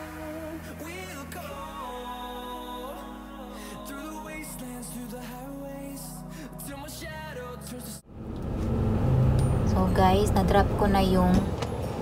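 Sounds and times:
car cabin road noise: 8.1s - 12.0s
woman speaking: 9.7s - 11.5s.

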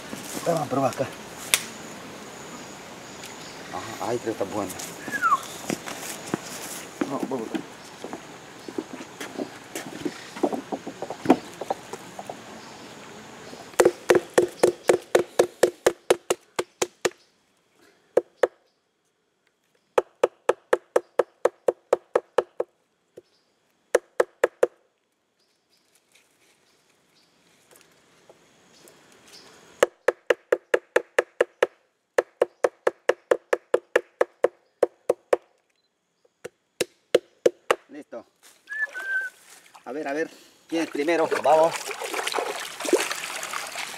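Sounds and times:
rustling: 4.6s - 12.4s, 25.6s - 29.6s
stick knocking on wooden log: 13.8s - 17.2s.

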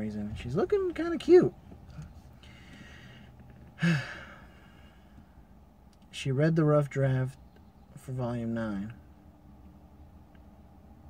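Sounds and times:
man sighing: 2.4s - 5.2s.

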